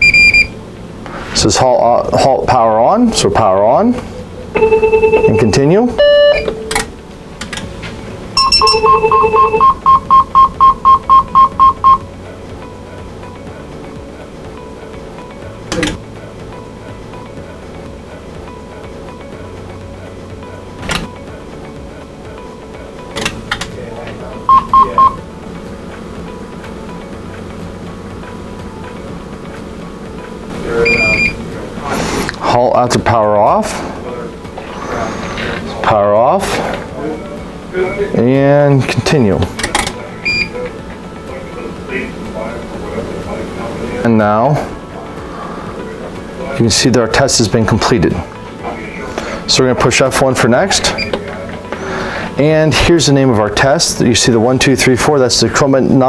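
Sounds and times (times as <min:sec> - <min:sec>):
electronic beeps: 0:00.0 - 0:00.6, 0:04.6 - 0:06.7, 0:08.4 - 0:12.0, 0:24.5 - 0:25.2, 0:30.8 - 0:31.4, 0:40.2 - 0:40.6, 0:51.0 - 0:51.2
two-tone electronic beep: 0:00.0 - 0:00.6, 0:04.6 - 0:06.7, 0:08.4 - 0:12.0, 0:24.5 - 0:25.2, 0:30.8 - 0:31.4, 0:40.2 - 0:40.6, 0:51.0 - 0:51.2
steady low hum: 0:00.0 - 0:54.5.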